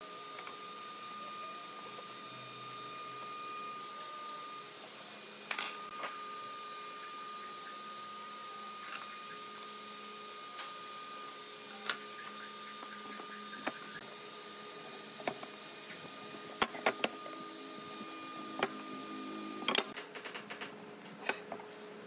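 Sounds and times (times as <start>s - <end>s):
thin high whine: 0.0s - 14.2s, 14.8s - 20.0s
faint hum: 16.2s - 20.0s
tools and boards clicking on workbench: 16.5s - 17.2s, 19.6s - 21.6s.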